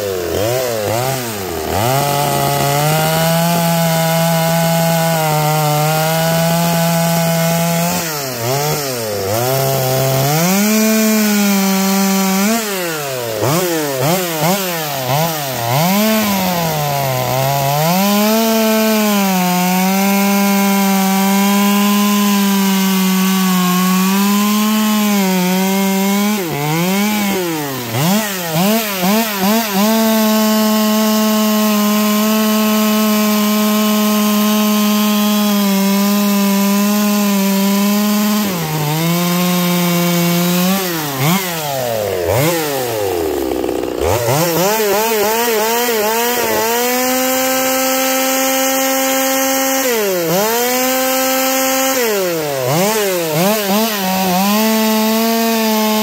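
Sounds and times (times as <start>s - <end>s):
chainsaw cutting log: 0.0s - 56.0s.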